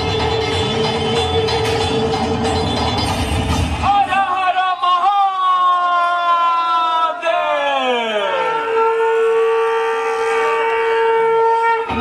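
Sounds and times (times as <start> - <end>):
falling glide into horn-like tone: 8.4 - 12.0.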